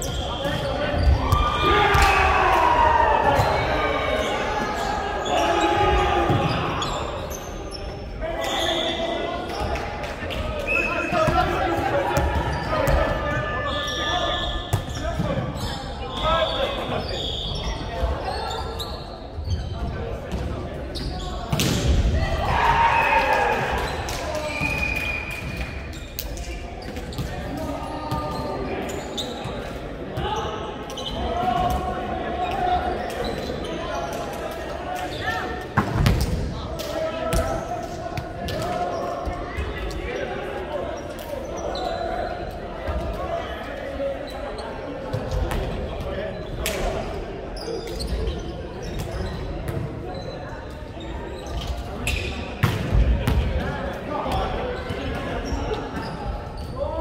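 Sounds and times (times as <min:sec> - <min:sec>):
players' voices talking and calling: 0:00.0 - 0:57.0
volleyball bouncing on wooden court: 0:52.1 - 0:53.7.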